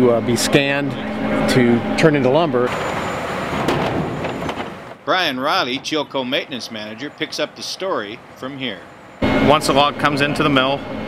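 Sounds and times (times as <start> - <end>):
chain conveyor machinery din: 2.7 - 4.9.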